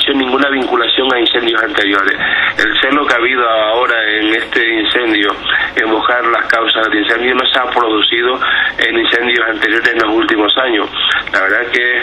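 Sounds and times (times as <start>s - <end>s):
man talking with radio-like sound: 0.0s - 12.0s.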